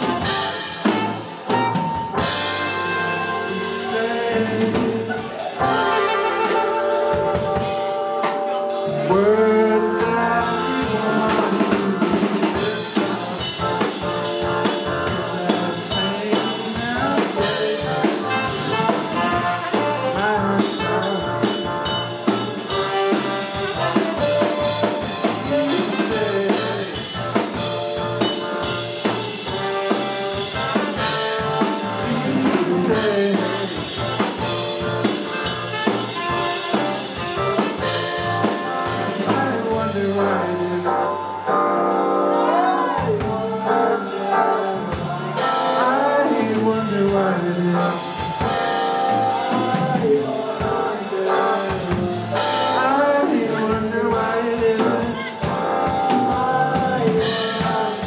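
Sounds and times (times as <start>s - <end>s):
drum kit: 0.0s - 58.0s
horns: 0.0s - 58.0s
keyboard: 0.0s - 58.0s.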